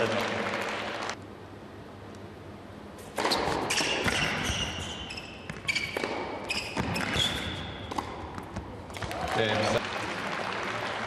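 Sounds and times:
sneakers squeaking on court: 0:03.0 - 0:08.7
racket striking tennis ball: 0:03.0 - 0:09.1.

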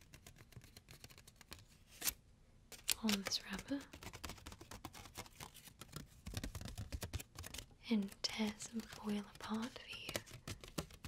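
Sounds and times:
fingers tapping on foil wrapper: 0:02.8 - 0:11.0.

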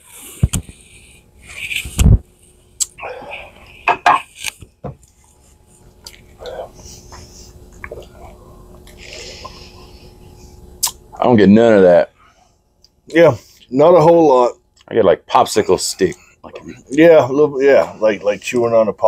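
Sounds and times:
lip-smacking: 0:02.8 - 0:03.0, 0:06.0 - 0:06.6, 0:07.7 - 0:08.2, 0:10.8 - 0:11.0
breathy exhales: 0:03.0 - 0:03.8, 0:06.4 - 0:10.6
men murmuring: 0:15.6 - 0:18.8.

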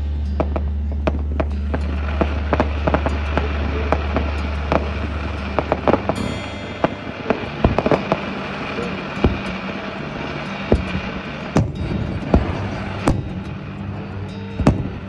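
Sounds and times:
steady low hum: 0:00.0 - 0:15.0
fireworks popping and banging: 0:00.4 - 0:15.0.

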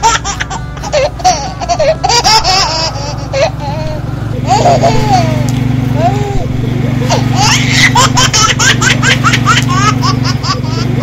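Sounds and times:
high-pitched laughter: 0:00.0 - 0:11.0
steady low hum: 0:00.0 - 0:11.0.

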